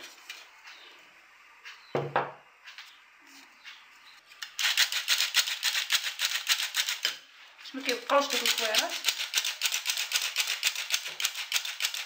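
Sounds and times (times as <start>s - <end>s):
hand-crank flour sifter rattling: 4.4s - 12.0s.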